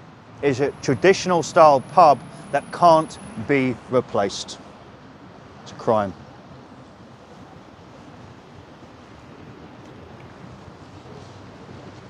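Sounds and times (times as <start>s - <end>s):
distant traffic hum: 0.0s - 12.0s.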